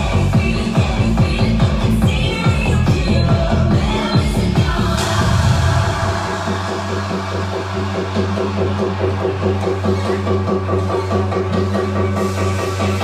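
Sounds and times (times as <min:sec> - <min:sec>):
heavy kick drum: 0:00.0 - 0:06.5.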